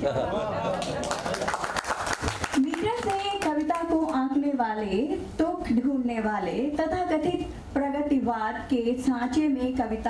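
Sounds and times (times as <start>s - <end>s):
hand clapping: 0.8s - 3.8s.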